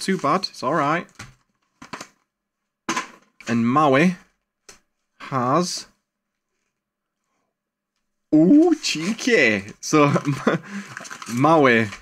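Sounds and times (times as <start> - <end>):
paper envelopes rustling: 8.8 - 12.0.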